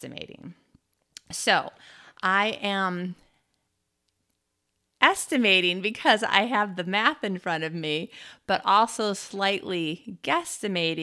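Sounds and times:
woman speaking: 0.0 - 3.2, 5.0 - 11.0.

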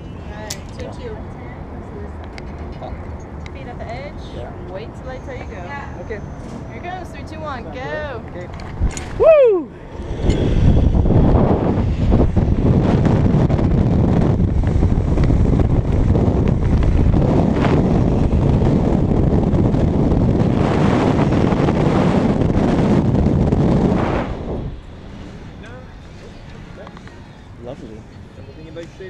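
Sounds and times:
wind rush buffeting microphone: 0.0 - 29.0.

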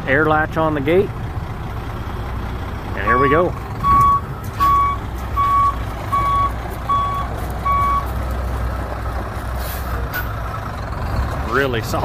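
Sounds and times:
diesel engine running: 0.0 - 12.0
back-up alarm beeping: 3.0 - 8.1.

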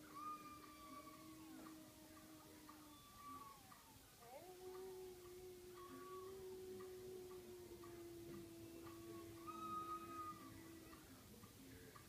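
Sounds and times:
long low animal cry: 0.0 - 11.2
soft even ticking: 0.0 - 12.0.

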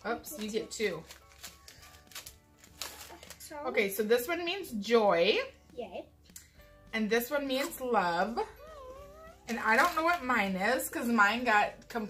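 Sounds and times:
quiet background music: 0.0 - 12.0
paper wrappers crinkling: 0.2 - 3.7, 9.5 - 10.3.

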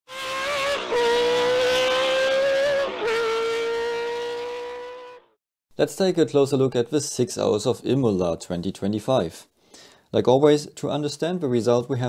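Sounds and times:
racing car engine revving high: 0.1 - 5.3.

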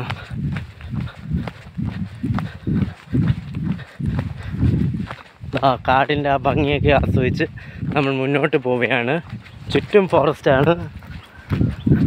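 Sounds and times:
footsteps on asphalt: 0.0 - 12.0.

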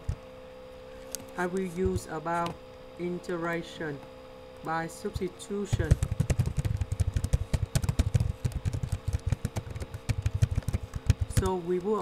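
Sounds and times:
electrical hum: 0.0 - 12.0
keyboard typing: 5.7 - 12.0.

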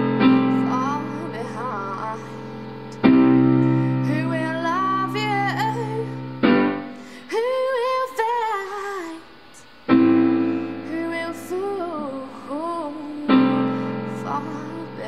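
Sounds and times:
piano chords ringing: 0.0 - 8.0, 9.9 - 15.0
woman singing: 0.0 - 15.0.

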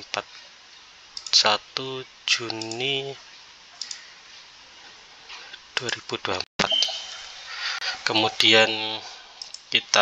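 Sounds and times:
faint room hiss: 0.0 - 10.0
computer mouse click: 3.8 - 4.0.

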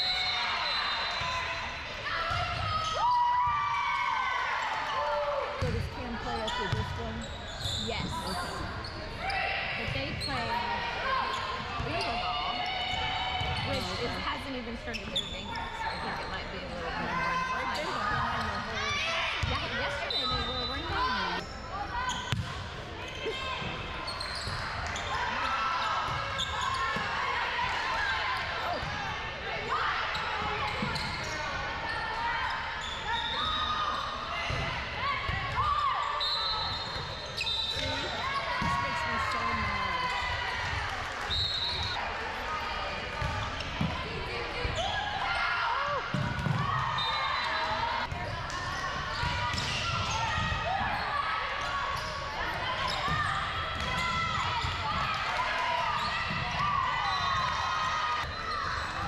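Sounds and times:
sneakers squeaking on hardwood: 23.1 - 25.1, 30.1 - 33.6.

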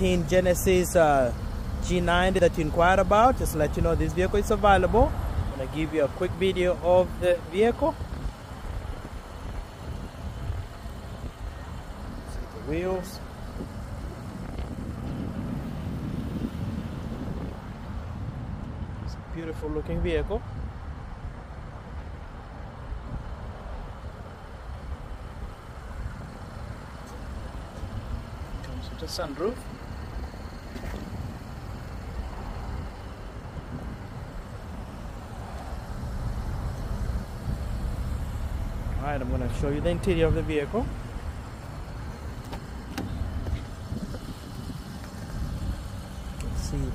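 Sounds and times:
low outdoor rumble: 0.0 - 46.9
wind buffeting microphone: 0.0 - 46.9.

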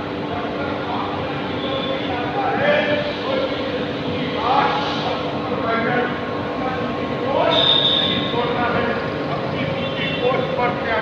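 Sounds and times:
high-pitched whine: 0.0 - 9.0
machinery hum: 0.0 - 11.0.

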